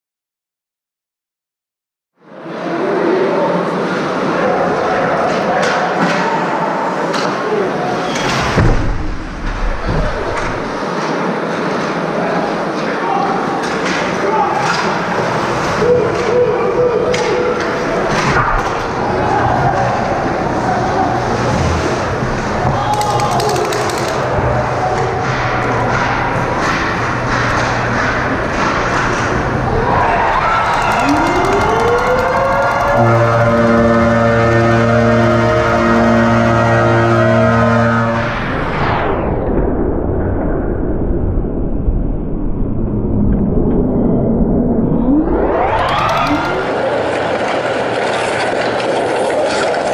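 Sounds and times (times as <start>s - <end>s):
crowd chatter: 2.2s - 36.6s, 45.8s - 49.9s
goal siren rising: 30.2s - 36.4s, 44.6s - 47.0s.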